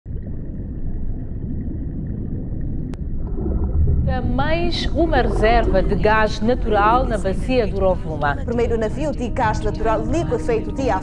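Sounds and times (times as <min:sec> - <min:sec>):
gurgling water: 0:00.1 - 0:08.6
underwater rumble: 0:00.1 - 0:09.6.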